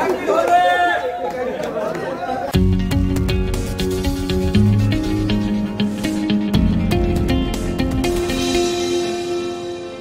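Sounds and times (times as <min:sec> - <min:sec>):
crowd chattering excitedly: 0:00.0 - 0:03.2
plucked guitar and bass music: 0:02.6 - 0:10.0.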